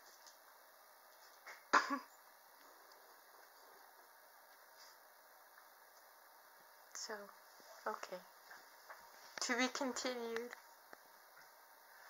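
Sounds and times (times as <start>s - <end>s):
person coughing: 1.7s - 2.1s.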